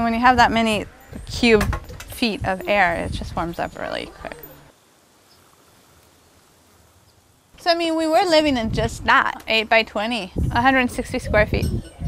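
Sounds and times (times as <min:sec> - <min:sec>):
faint outdoor background hiss: 0:00.0 - 0:12.0.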